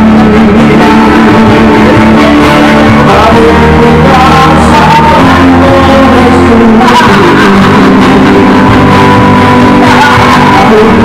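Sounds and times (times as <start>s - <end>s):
bass: 0.0s - 11.0s
man singing into microphone: 0.0s - 11.0s
strummed acoustic guitars: 0.0s - 11.0s.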